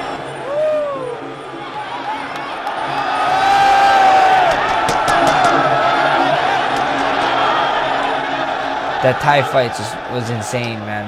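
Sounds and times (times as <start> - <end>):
crowd yelling and cheering: 0.0 - 11.0
music: 0.0 - 11.0.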